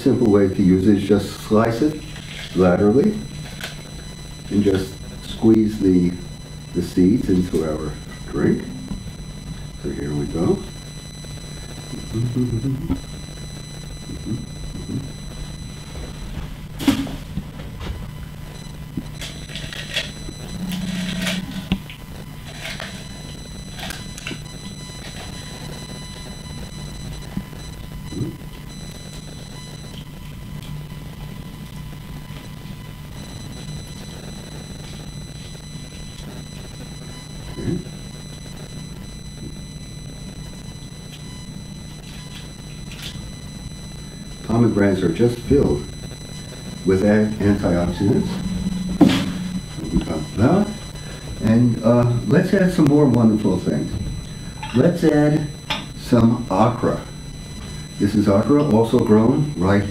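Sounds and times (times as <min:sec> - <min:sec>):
electrical hum: 0:00.0 - 0:59.9
faint high whine: 0:00.0 - 0:59.9.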